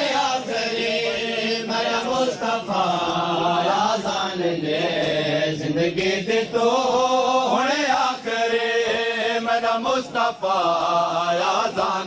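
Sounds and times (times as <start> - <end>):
men chanting a melodic lament: 0.0 - 12.0.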